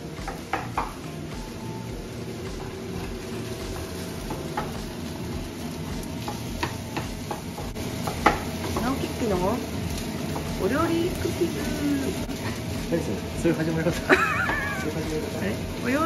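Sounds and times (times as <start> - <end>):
food sizzling in a frying pan: 0.0 - 16.0.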